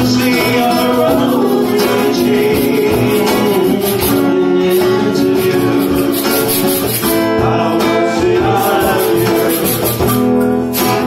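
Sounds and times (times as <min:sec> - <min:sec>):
hand percussion beat: 0:00.0 - 0:11.0
strummed acoustic guitar: 0:00.0 - 0:11.0.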